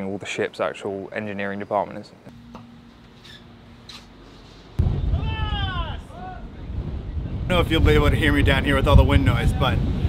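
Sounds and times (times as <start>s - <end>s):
wind buffeting microphone: 4.8s - 10.0s.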